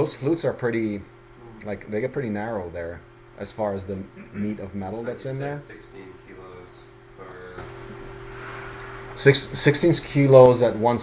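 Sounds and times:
faint background hiss: 0:00.0 - 0:11.0
steady low hum: 0:00.0 - 0:11.0.

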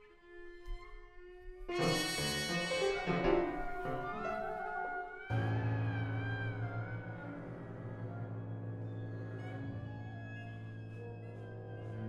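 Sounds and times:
winds and strings sustained note: 0:05.3 - 0:12.0.

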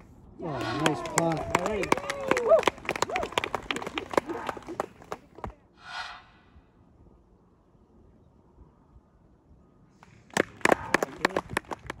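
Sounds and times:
person cheering: 0:00.5 - 0:03.4
small crowd clapping: 0:00.6 - 0:05.6, 0:10.3 - 0:12.0.

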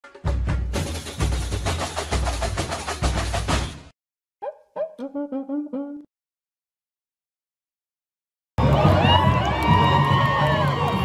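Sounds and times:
percussion-driven intro music: 0:00.0 - 0:03.9.

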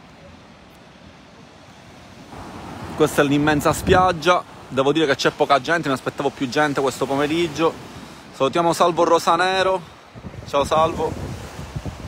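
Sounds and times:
waves breaking on a beach: 0:00.0 - 0:12.0.

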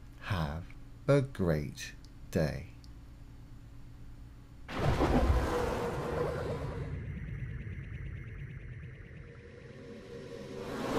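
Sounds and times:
quiet hum: 0:00.0 - 0:10.6.

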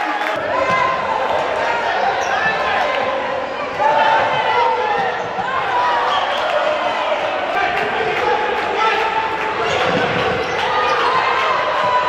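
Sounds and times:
players calling out: 0:00.0 - 0:12.0.

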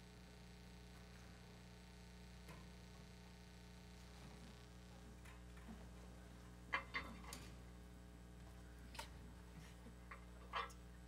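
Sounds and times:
faint ticks and clicks: 0:00.0 - 0:07.7
low electrical hum: 0:00.0 - 0:11.0.

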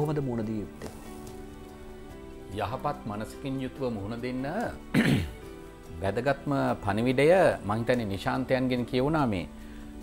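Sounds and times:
soft background music: 0:00.0 - 0:10.0
man clearing his throat: 0:04.9 - 0:05.4.

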